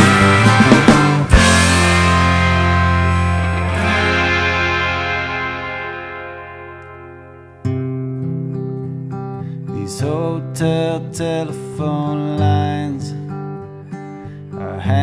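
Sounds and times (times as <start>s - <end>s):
distorted band chord: 0.0s - 7.7s
soft guitar and bass: 0.0s - 15.0s.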